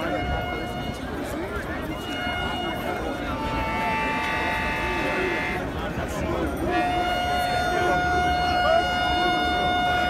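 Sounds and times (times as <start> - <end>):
high-pitched horn note: 0.0 - 5.7
crowd voices and chatter: 0.0 - 10.0.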